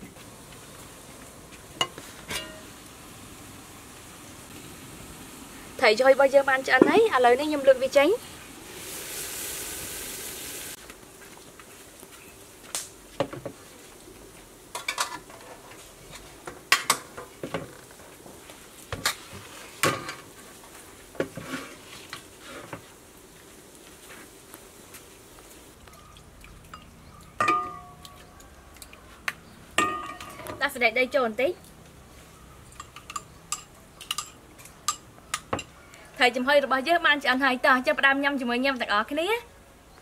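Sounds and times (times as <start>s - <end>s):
steam hissing off boiling pot: 0.0s - 25.8s
spoon clinking on bowls: 25.9s - 28.3s, 29.8s - 30.4s, 32.7s - 35.7s.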